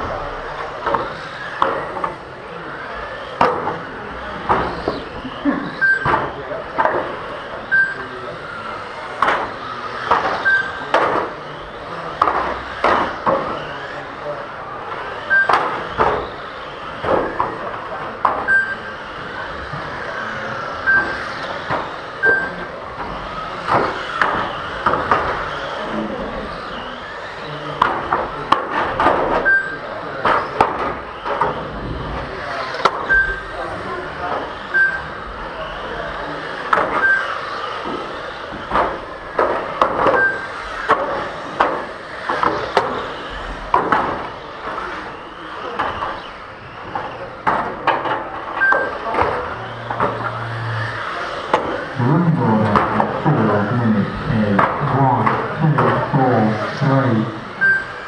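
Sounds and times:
high electric motor whine: 0.0 - 58.0
short high beeps: 7.7 - 8.0, 18.5 - 18.9, 33.1 - 33.4, 34.8 - 35.1, 57.6 - 58.0
toy cars knocking barriers: 8.8 - 13.9, 14.9 - 31.7, 36.4 - 50.4, 52.6 - 53.3.

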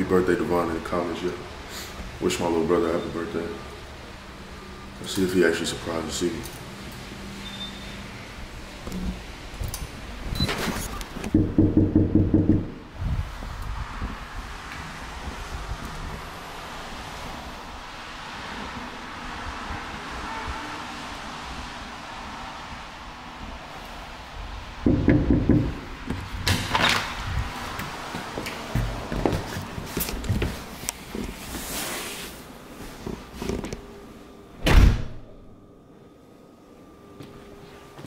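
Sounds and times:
knocking on a door: 11.3 - 12.8, 24.9 - 25.8
room hiss: 30.4 - 38.0.

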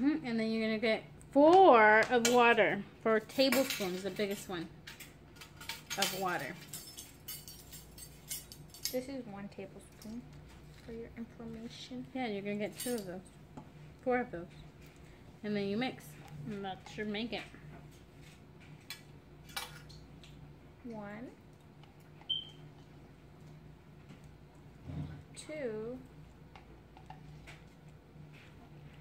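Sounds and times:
metal measuring spoons clinking: 3.3 - 9.1, 12.7 - 13.2.

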